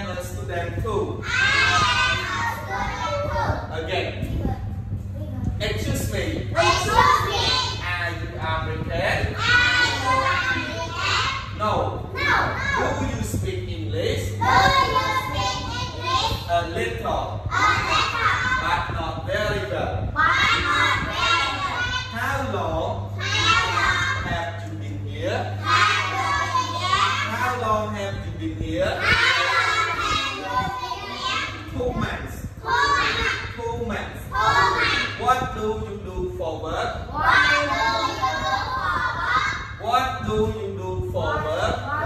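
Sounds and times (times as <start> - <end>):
steady low hum: 0.0 - 42.0
children chattering and calling out: 1.2 - 3.7, 6.5 - 7.8, 9.2 - 13.2, 14.2 - 16.5, 17.4 - 18.8, 20.2 - 24.3, 25.5 - 27.6, 29.0 - 33.6, 34.3 - 35.4, 37.0 - 39.9, 41.4 - 42.0.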